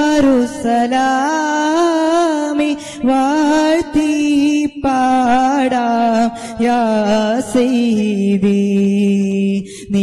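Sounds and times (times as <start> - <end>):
person singing unaccompanied: 0.0 - 10.0.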